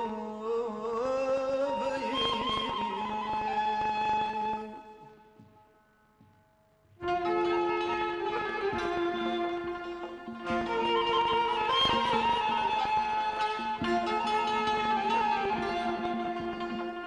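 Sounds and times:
violin: 0:00.0 - 0:05.8, 0:07.0 - 0:17.0
frame drum: 0:07.0 - 0:17.0
struck santur strings: 0:07.0 - 0:17.0.

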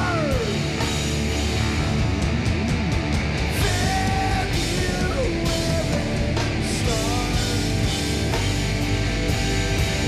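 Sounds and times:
bass guitar: 0:00.0 - 0:10.0
distorted electric guitars: 0:00.0 - 0:10.0
drums: 0:00.0 - 0:10.0.

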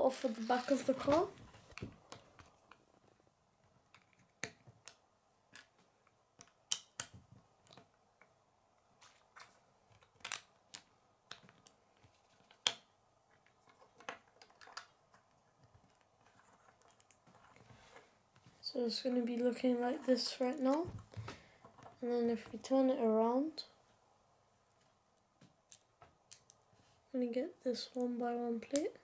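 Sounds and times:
plastic bricks clicking together: 0:06.4 - 0:07.9, 0:09.4 - 0:11.8.

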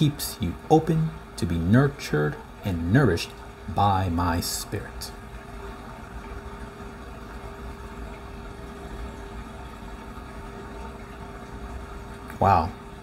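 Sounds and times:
faint constant tone: 0:00.0 - 0:13.0
low machine hum: 0:00.0 - 0:13.0.

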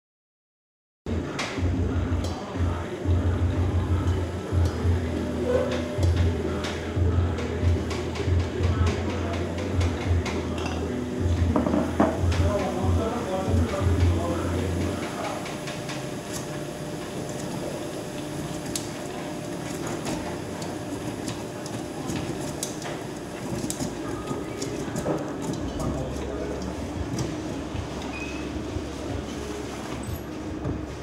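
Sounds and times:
low pulsing beat: 0:01.6 - 0:15.0, 0:26.6 - 0:29.6, 0:30.3 - 0:31.0.

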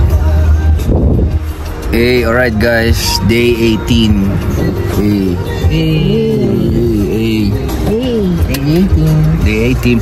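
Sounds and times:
car cabin rumble: 0:00.0 - 0:10.0.

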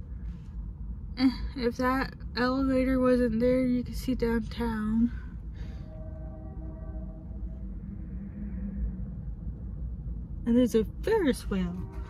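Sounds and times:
distant traffic rumble: 0:00.0 - 0:12.0
distant pitched tone: 0:05.6 - 0:12.0.

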